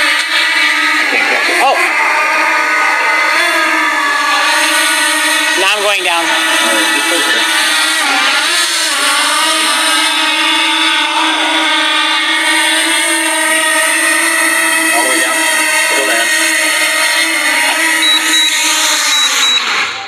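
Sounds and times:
drone propellers whining: 0.0 - 20.0
short high beeps: 17.9 - 19.7.

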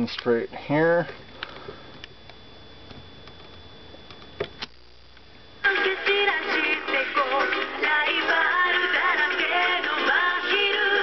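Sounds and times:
music with singing from cassette: 5.6 - 11.0.

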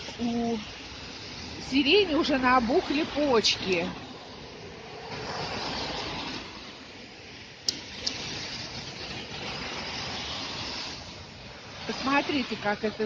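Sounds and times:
city road traffic: 0.0 - 13.0.

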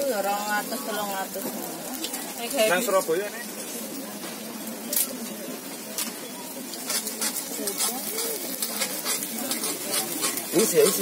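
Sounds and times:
batter sizzling on a griddle: 0.0 - 11.0.

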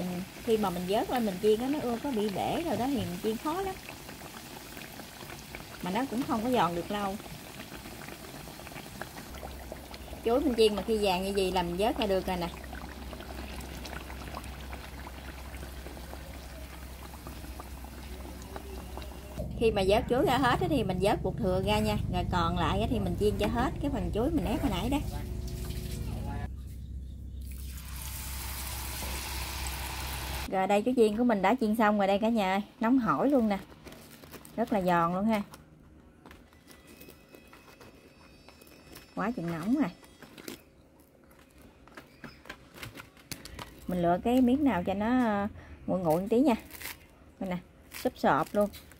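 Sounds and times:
fritters deep-frying in oil: 0.0 - 19.4, 27.8 - 30.5
crisp fritters crackling in hands: 46.2 - 47.0.

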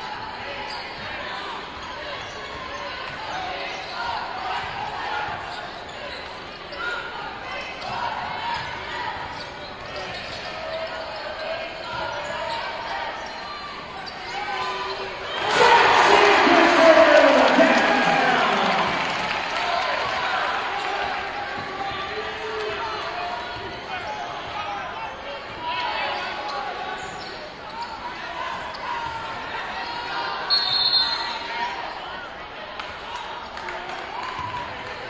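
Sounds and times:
hubbub of indistinct voices: 0.0 - 35.0
crowd cheering: 14.6 - 23.9.

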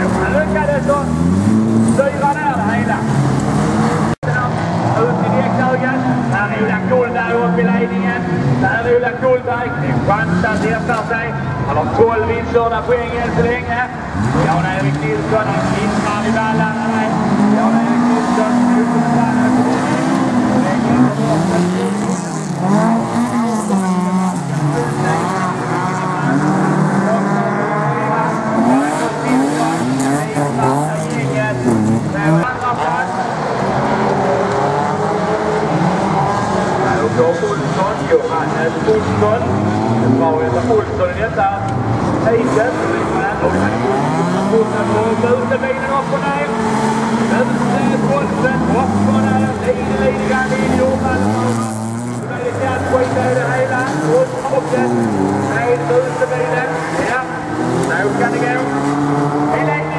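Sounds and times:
race car engines revving: 0.0 - 59.9.

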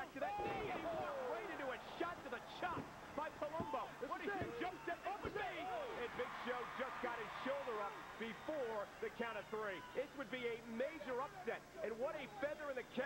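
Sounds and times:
men talking: 0.0 - 13.0
thuds in wrestling ring: 0.4 - 1.0.

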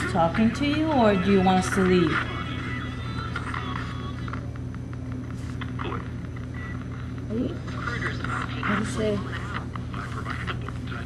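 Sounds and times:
radio static and hum: 0.0 - 11.0
snatches of radio sound: 7.6 - 11.0.

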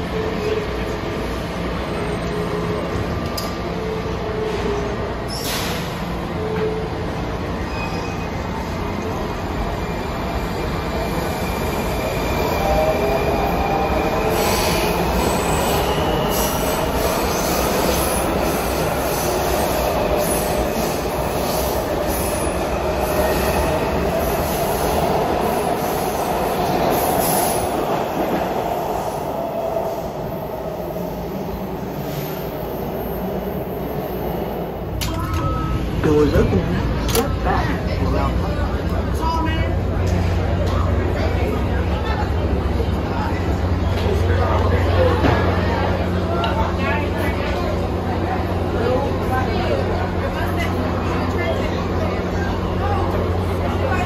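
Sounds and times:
subway train rumbling: 0.0 - 54.0
train wheel squeal: 1.8 - 7.0, 7.6 - 23.8.

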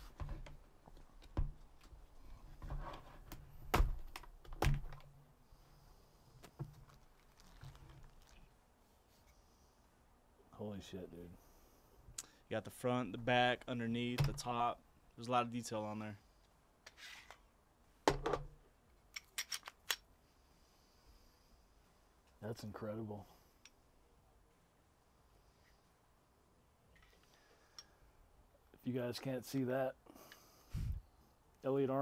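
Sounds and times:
pistol handling clatter: 19.0 - 20.1.

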